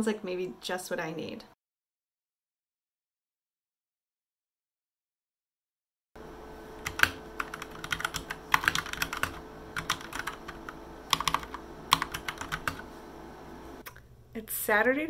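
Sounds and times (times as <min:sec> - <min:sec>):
faint steady hum: 0:06.2 - 0:15.0.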